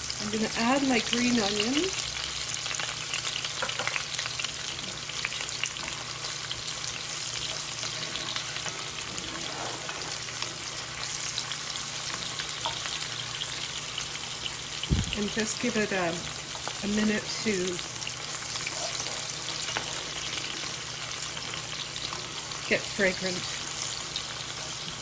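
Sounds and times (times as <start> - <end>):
onions sizzling in oil: 0.0 - 25.0
wooden spoon stirring: 7.4 - 10.7.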